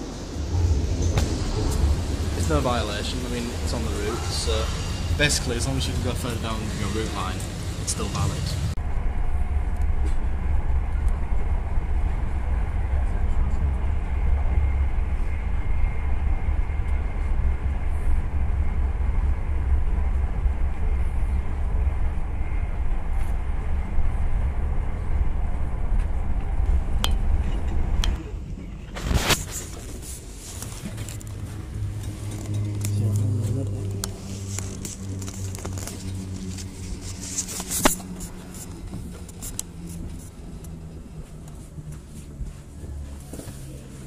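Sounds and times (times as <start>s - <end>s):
train rumbling from inside carriage: 0.0s - 44.0s.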